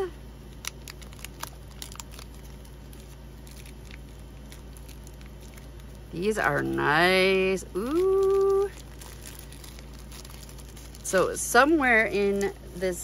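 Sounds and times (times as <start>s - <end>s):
plastic packaging crinkling: 0.4s - 13.0s.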